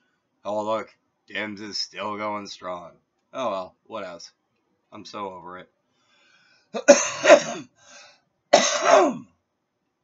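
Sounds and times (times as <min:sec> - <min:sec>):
man coughing hard: 0:06.8 - 0:07.8, 0:08.6 - 0:09.3.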